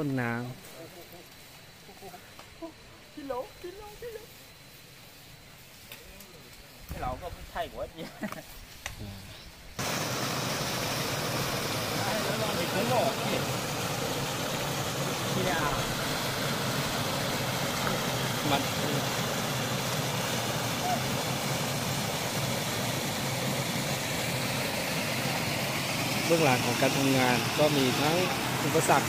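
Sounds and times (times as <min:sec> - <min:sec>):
stream water rushing over rocks: 0:09.8 - 0:22.8.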